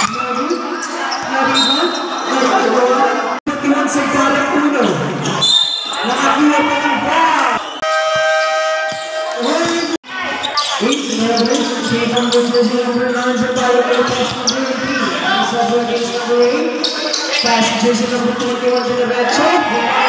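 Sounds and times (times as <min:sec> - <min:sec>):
players' voices: 0:00.0 - 0:20.0
basketball bouncing on court: 0:11.1 - 0:16.5.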